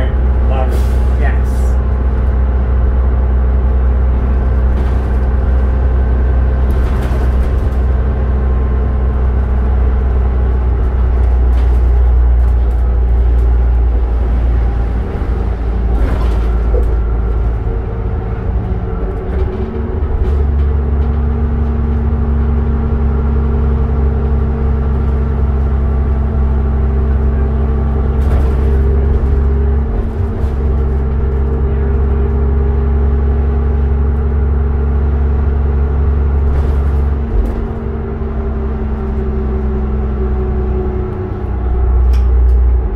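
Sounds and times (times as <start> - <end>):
bus engine drone: 0.0 - 42.9.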